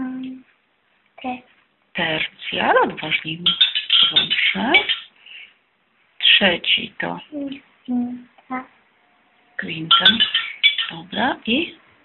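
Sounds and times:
voice: 0.0s - 0.5s, 1.2s - 5.0s, 6.2s - 8.7s, 9.6s - 11.8s
electronic chime tones: 3.4s - 5.1s, 9.9s - 11.2s.

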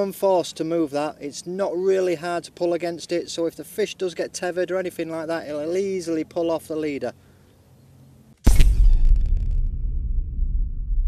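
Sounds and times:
deep rumbling logo sting: 8.5s - 11.0s.

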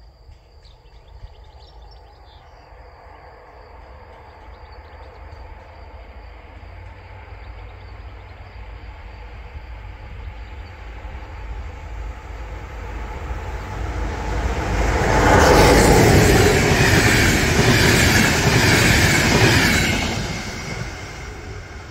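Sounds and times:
train passing on rails: 0.0s - 21.9s.

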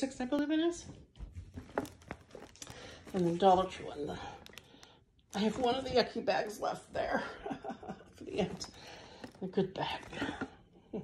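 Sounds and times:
soft rustling: 0.2s - 11.0s.

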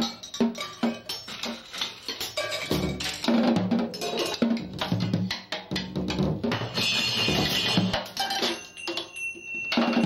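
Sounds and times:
drum kit played with sticks: 0.0s - 10.0s.

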